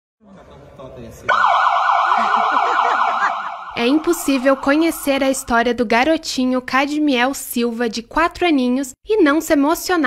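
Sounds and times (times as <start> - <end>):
police siren warbling: 1.3 - 5.7.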